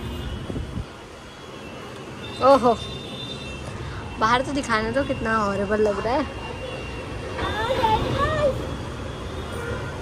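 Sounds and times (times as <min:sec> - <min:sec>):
distant city traffic: 0:00.0 - 0:10.0.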